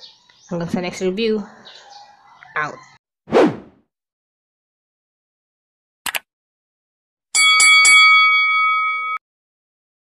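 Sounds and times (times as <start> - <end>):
quick clicks: 6.1 - 6.3
notification bell ringing: 7.4 - 9.2.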